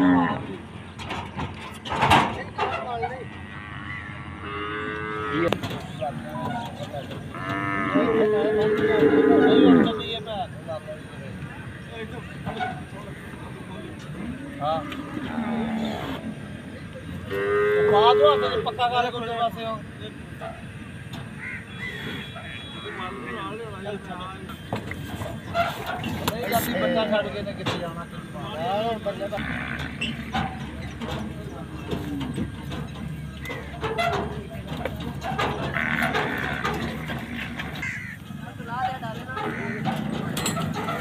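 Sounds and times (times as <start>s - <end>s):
cow mooing: 0.0s - 0.5s, 3.2s - 5.6s, 7.3s - 10.1s, 14.7s - 16.4s, 17.3s - 18.8s, 29.3s - 34.3s, 35.2s - 38.1s
livestock animal calling: 3.2s - 10.1s, 21.2s - 23.7s, 28.9s - 41.0s
hooves knocking on truck floor: 24.5s - 41.0s.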